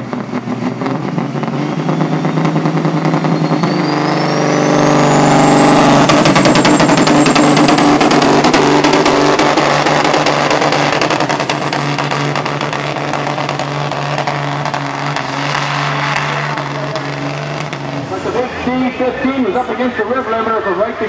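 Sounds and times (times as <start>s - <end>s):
diesel truck engine at full throttle: 0.0s - 21.0s.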